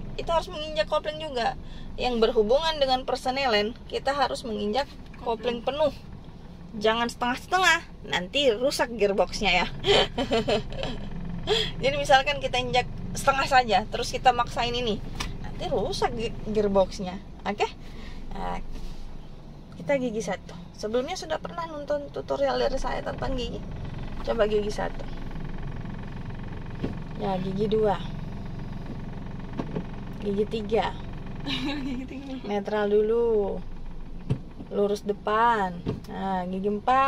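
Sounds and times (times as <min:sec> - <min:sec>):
car engine idling: 0:00.0 - 0:37.0.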